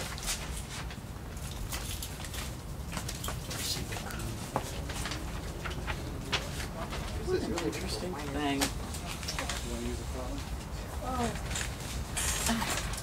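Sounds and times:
paper rustling: 0.0s - 10.6s.

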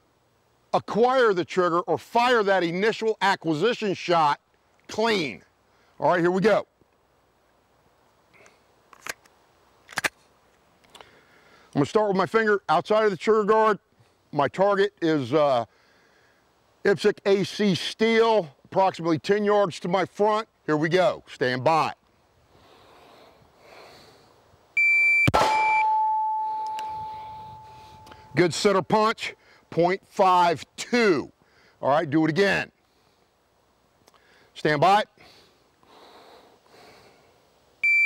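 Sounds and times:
pistol mechanical clicks: 8.4s - 10.2s
shot timer beep: 24.8s - 28.4s
pistol shot: 25.3s - 26.2s
steel target ringing: 25.3s - 28.4s.

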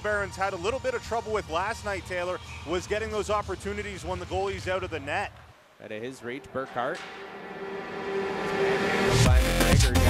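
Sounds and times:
steady held tone: 6.2s - 9.3s
electronic dance music: 6.3s - 10.0s.

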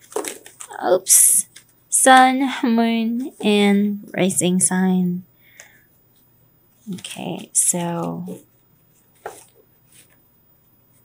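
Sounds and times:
cards rustling: 0.0s - 0.8s, 6.8s - 10.2s.

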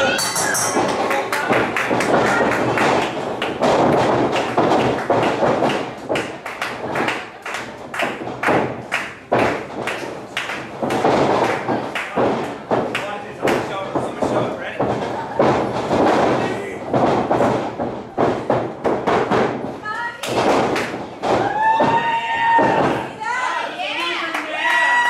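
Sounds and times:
thuds and slaps on wrestling canvas: 1.9s - 7.2s, 7.9s - 23.1s.

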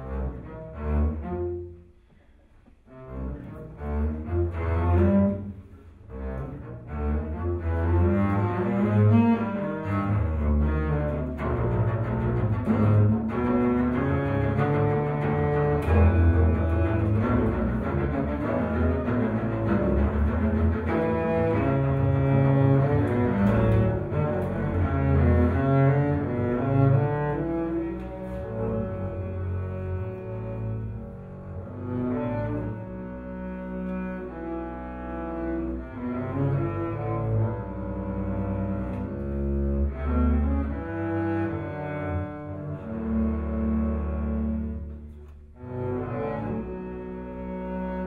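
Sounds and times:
double basses bowed duet: 0.0s - 48.0s.

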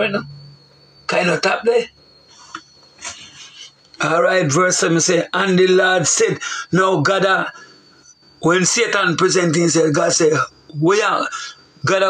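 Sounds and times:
thin high-pitched tone: 0.0s - 12.0s.

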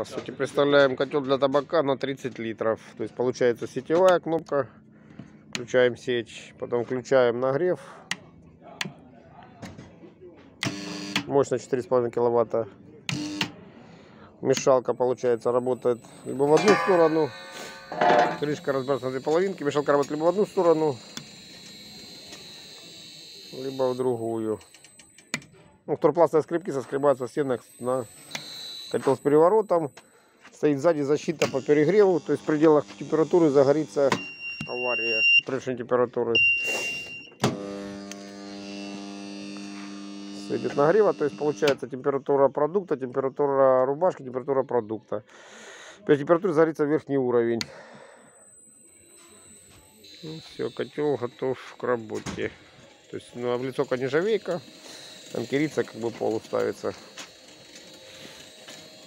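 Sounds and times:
electric gear motor whining: 15.5s - 24.7s, 27.6s - 29.5s, 31.3s - 34.1s, 37.5s - 41.8s, 48.4s - 59.0s
short electronic beep: 15.6s - 20.8s, 34.1s - 35.5s, 36.4s - 37.4s, 49.8s - 52.4s.

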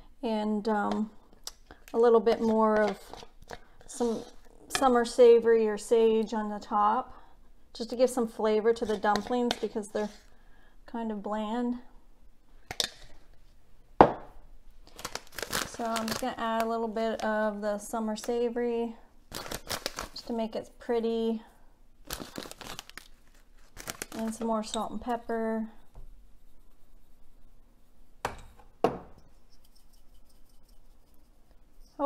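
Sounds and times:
utensil knocking on counter: 14.0s - 14.3s, 28.2s - 29.1s
plastic packet crinkling: 14.8s - 17.3s, 19.3s - 20.3s, 22.0s - 24.5s.

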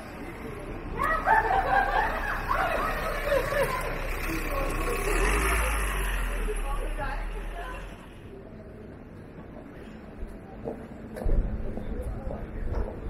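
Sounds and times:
people talking loudly: 0.0s - 9.1s.

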